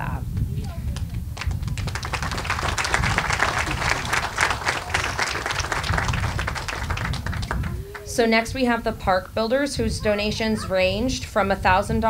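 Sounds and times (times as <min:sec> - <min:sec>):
audience applauding: 0:01.4 - 0:08.4.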